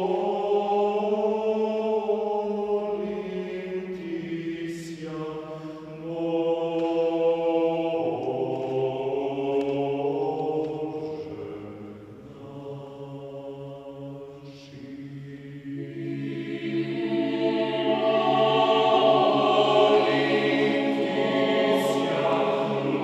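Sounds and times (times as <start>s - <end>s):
church chant: 0.0s - 23.0s.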